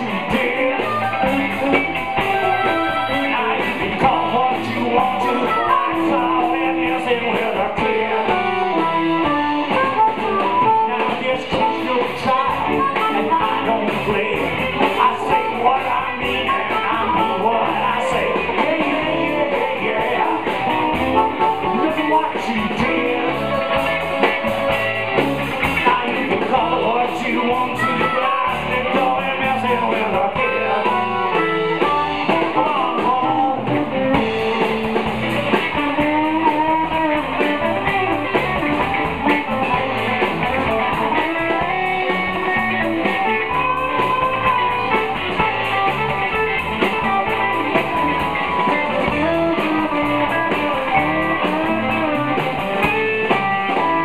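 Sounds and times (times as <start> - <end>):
electric blues band playing: 0.0 - 54.0
amplified blues harmonica: 0.6 - 3.6, 5.2 - 6.7, 8.2 - 13.9.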